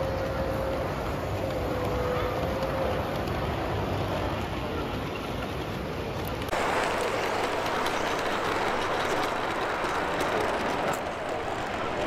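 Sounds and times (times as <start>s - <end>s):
model train wheels rolling on track: 0.0s - 12.0s.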